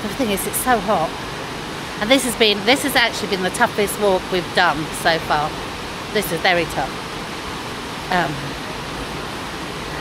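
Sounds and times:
waterfall rushing: 0.0s - 10.0s
person saying um: 8.1s - 8.6s.

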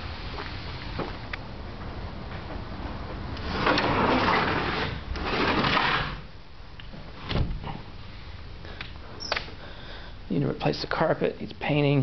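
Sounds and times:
sliding glass door rolling open: 0.0s - 6.4s.

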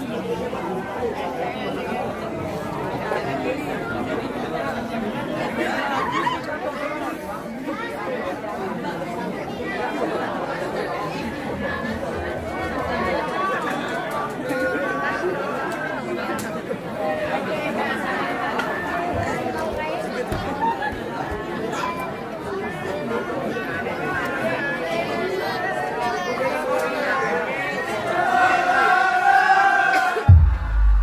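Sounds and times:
audience chatter: 0.0s - 31.0s
voice rising louder: 30.3s - 31.0s.

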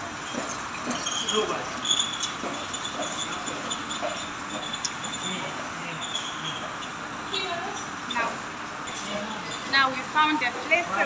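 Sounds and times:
escalator running: 0.0s - 11.0s.

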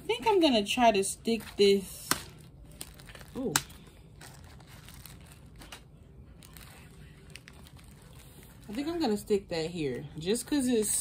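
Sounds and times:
plastic wrap crinkling: 0.1s - 9.6s.

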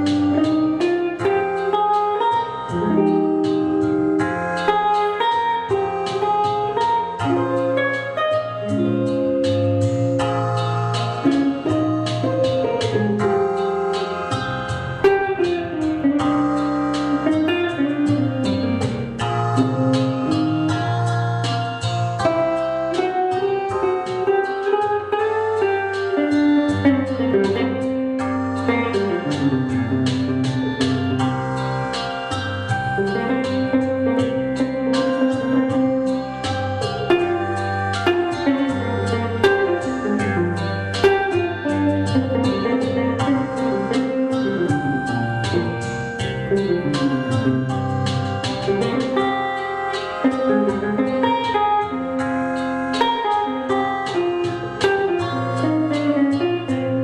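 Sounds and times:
fingerstyle electric guitar: 0.0s - 57.0s.

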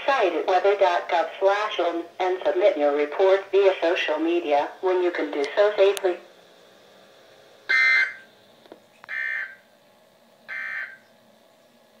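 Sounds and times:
radio data bursts: 7.7s - 8.4s, 9.1s - 9.6s, 10.5s - 11.1s.

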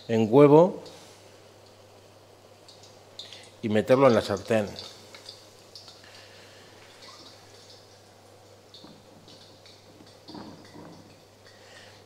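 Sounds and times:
meat frying in hot oil: 0.8s - 12.0s.

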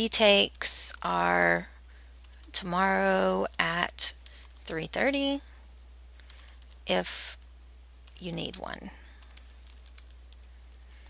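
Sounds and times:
low steady hum: 0.0s - 11.0s
keyboard typing clicks: 9.2s - 11.0s.

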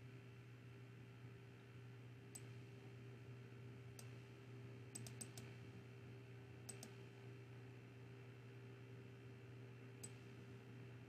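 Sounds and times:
faint steady hum: 0.0s - 11.0s
computer mouse clicks: 2.3s - 2.6s, 3.9s - 4.2s, 4.9s - 5.6s, 6.6s - 7.1s, 10.0s - 10.4s.

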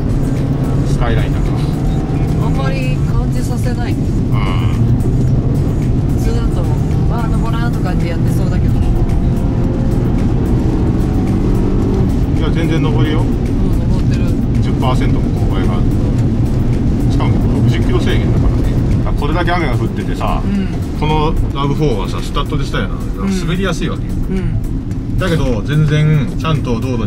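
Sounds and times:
car engine droning: 0.0s - 27.0s
tyre and road noise: 0.0s - 27.0s.

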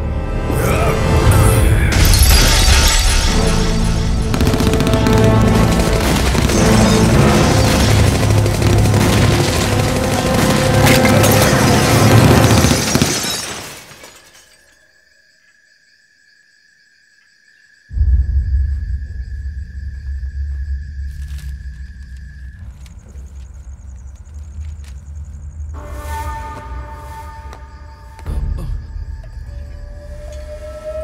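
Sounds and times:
dramatic film score: 0.0s - 13.1s, 17.9s - 31.0s
glass shattering: 1.9s - 4.1s, 5.9s - 14.8s
deep low rumble: 18.0s - 25.6s.

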